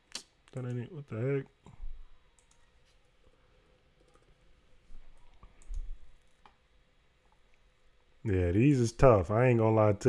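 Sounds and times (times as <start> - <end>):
computer mouse clicks: 2.4 - 2.7, 5.3 - 6.6.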